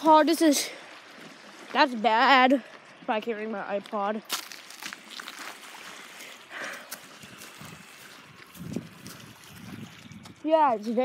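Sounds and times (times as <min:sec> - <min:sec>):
small waves lapping on pebbles: 0:00.0 - 0:11.0.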